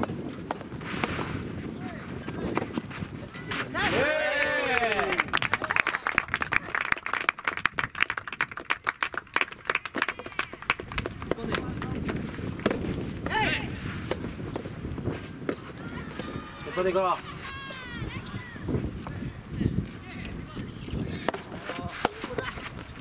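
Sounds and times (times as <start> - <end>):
shouting voices: 3.3 - 5.3, 13.2 - 13.8, 15.6 - 18.7
hand clapping: 4.6 - 12.2.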